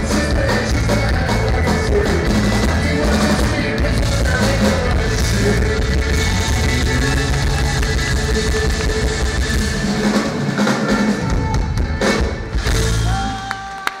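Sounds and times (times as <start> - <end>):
folk-rock band playing: 0.0 - 13.6.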